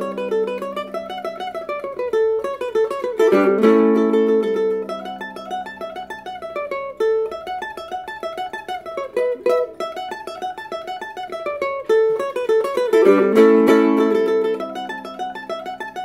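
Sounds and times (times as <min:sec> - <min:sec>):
strummed ukulele chord: 0:00.0 - 0:16.0
ukulele picking fast melody: 0:00.0 - 0:16.0.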